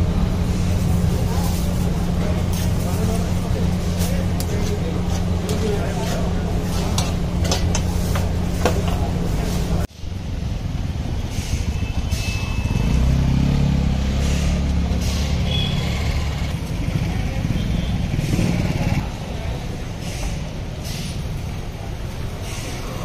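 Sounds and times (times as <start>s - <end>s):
faint voices: 0.0s - 9.9s
vehicle engine rumbling: 0.0s - 23.0s.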